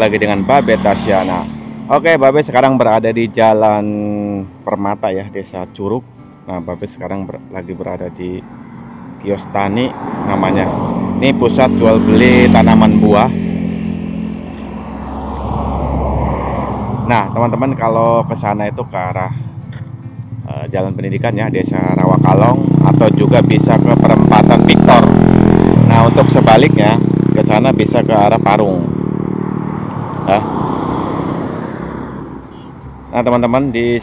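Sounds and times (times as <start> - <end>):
vehicle passing on road: 0.0 - 3.8, 8.0 - 34.0.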